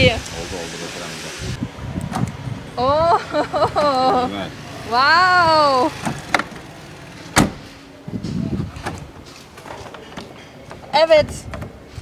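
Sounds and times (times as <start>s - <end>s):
car central locking click: 7.4s - 7.6s.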